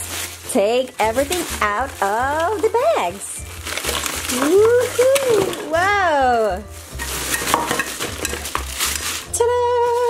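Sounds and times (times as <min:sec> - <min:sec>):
plastic bags crinkling: 0:00.0 - 0:10.0
plastic items clattering: 0:00.0 - 0:10.0.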